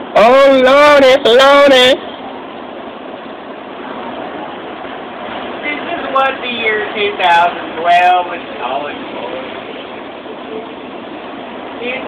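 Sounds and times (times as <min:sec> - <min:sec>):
heavy wind-driven rain: 0:00.0 - 0:12.0.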